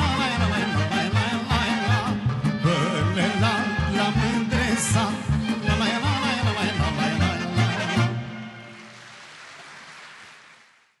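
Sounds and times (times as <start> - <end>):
audience applauding: 8.4 - 11.0.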